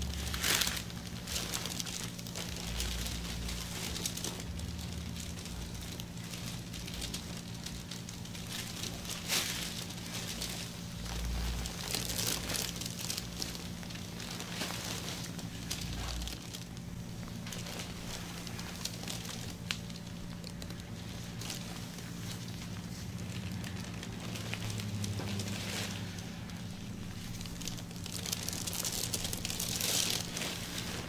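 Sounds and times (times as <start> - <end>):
plastic gloves rustling: 0.0 - 31.0
steady low hum: 0.0 - 31.0.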